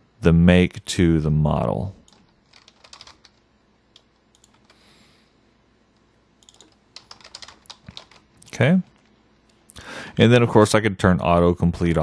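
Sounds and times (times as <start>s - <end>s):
faint keyboard typing: 2.0s - 4.9s, 5.9s - 9.6s.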